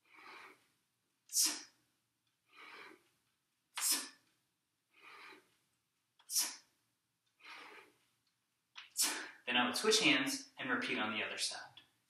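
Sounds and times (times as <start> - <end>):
man breathing hard: 4.9 - 5.5, 7.4 - 8.0, 8.9 - 9.4.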